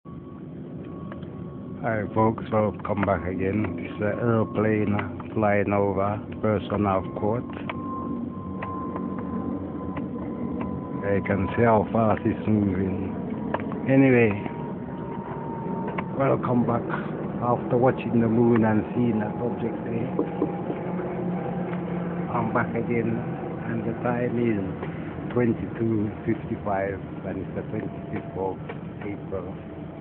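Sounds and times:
aeroplane rumbling overhead: 0.0s - 30.0s
low mechanical hum: 0.1s - 30.0s
thin high whine: 0.1s - 30.0s.

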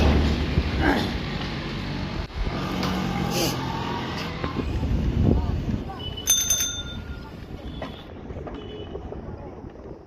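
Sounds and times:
vehicle engine hum: 0.0s - 5.9s
road noise: 0.0s - 10.0s.

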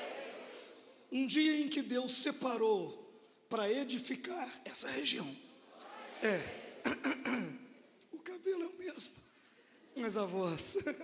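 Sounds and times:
man clearing his throat: 6.8s - 7.7s.

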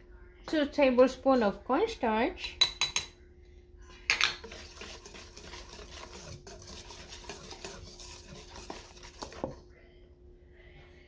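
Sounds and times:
whisk scraping a metal bowl: 4.2s - 9.8s.

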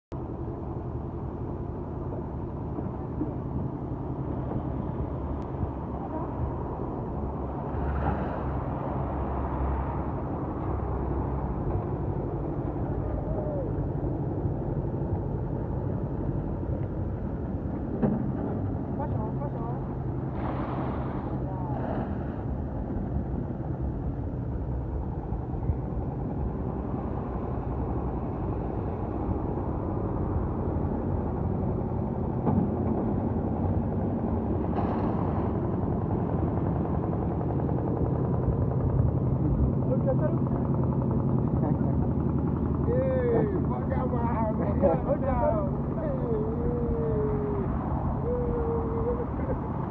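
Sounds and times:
engine humming: 0.1s - 49.9s
indistinct voices: 42.8s - 49.9s.

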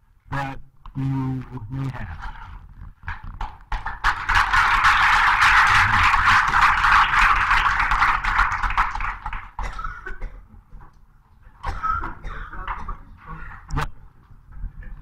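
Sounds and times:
audience applauding: 3.8s - 9.6s.

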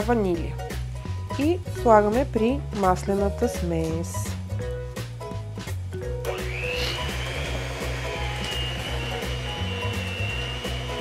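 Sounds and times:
background music: 0.0s - 11.0s
electric hand mixer whine: 6.2s - 11.0s.

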